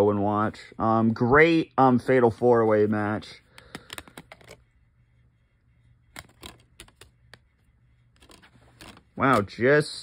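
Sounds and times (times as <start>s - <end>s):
plastic clicks of disc case: 3.6s - 4.6s.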